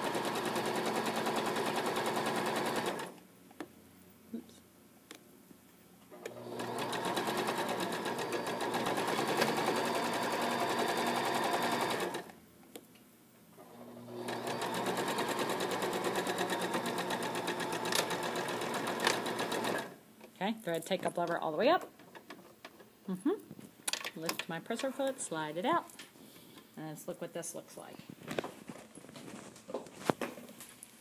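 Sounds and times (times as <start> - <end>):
electric sewing machine stitching: 0.0 - 3.2, 6.2 - 12.3, 13.6 - 20.0.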